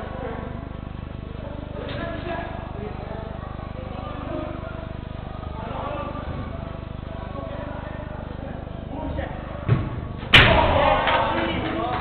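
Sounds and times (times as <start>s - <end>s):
football struck hard: 9.6s - 11.3s.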